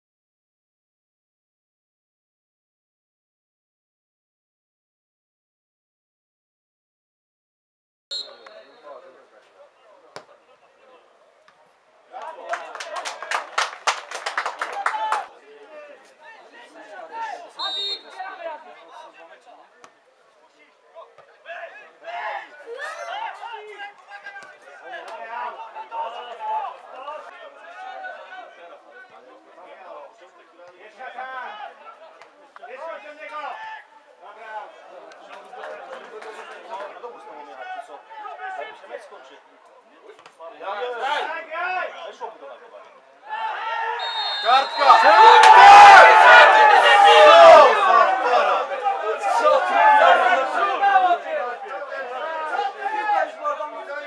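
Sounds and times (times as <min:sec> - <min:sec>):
distant shouts and chatter: 0:14.6 - 0:39.8, 0:43.1 - 0:54.0.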